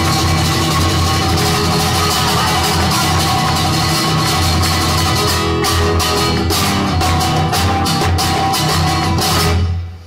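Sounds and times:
flamenco guitar music: 0.0s - 10.0s.

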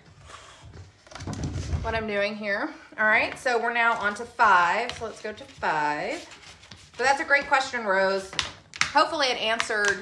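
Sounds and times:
woman speaking: 1.8s - 6.3s, 7.0s - 10.0s.

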